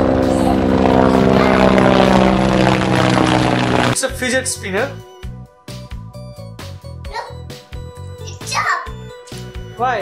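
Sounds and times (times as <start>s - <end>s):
helicopter engine and rotor drone: 0.0s - 4.0s.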